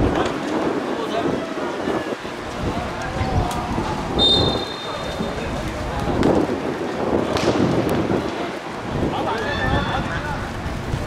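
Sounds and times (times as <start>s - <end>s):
players' voices: 0.0s - 11.0s
referee's whistle blast: 4.2s - 5.3s.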